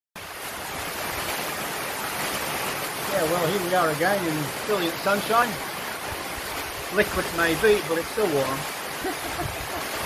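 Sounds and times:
heavy rain on corrugated roof: 0:00.2 - 0:10.0.

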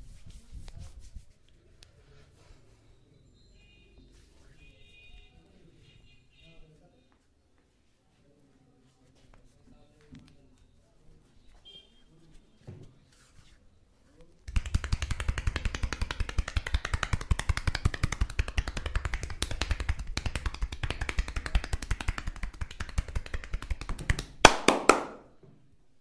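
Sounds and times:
hands patting bare skin: 0:00.0 - 0:01.9, 0:14.5 - 0:25.1
sharp slaps on skin: 0:14.5 - 0:25.2.

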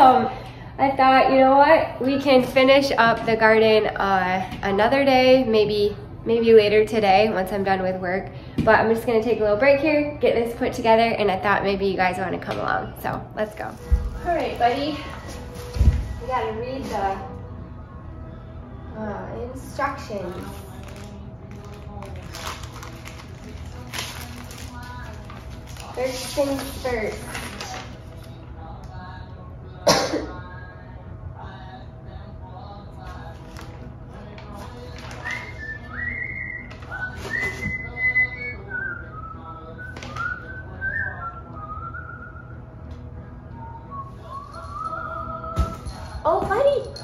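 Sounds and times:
packaging rustling: 0:20.2 - 0:28.3, 0:34.4 - 0:35.8
person whistling a tune: 0:35.2 - 0:42.6, 0:43.9 - 0:45.9.

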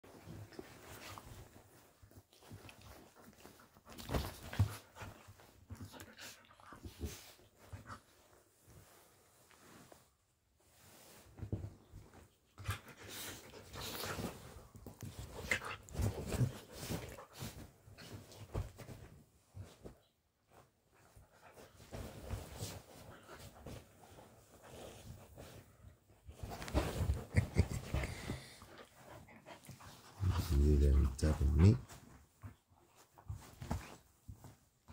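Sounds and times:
dogs scuffling on bedding: 0:00.1 - 0:06.2, 0:10.7 - 0:34.9.

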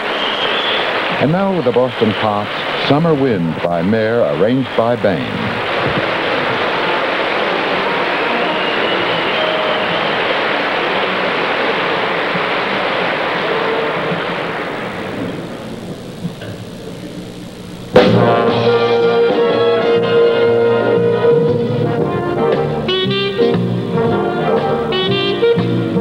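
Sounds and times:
audience applause: 0:00.0 - 0:15.8
orchestra with brass: 0:18.0 - 0:26.0.

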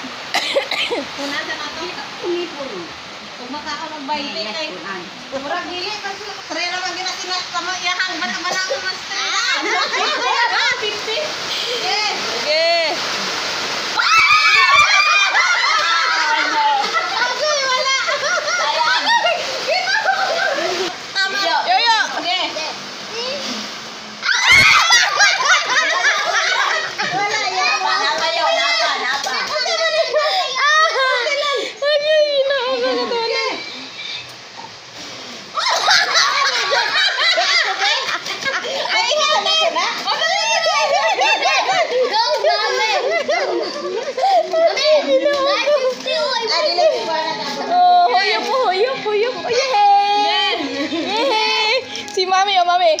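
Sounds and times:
children talking and calling out: 0:04.0 - 0:53.0.

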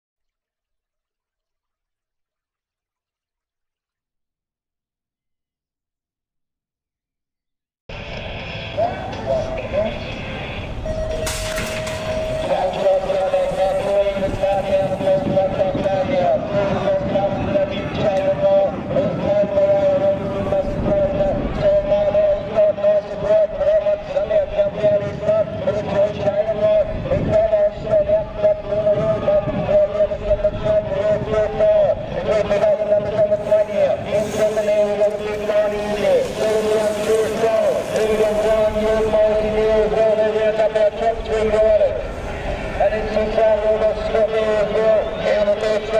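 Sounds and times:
racetrack noise: 0:07.9 - 0:45.9
race commentary over loudspeaker: 0:08.4 - 0:45.9.

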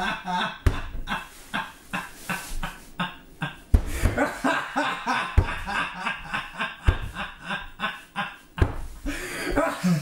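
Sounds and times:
person laughing: 0:00.0 - 0:10.0.

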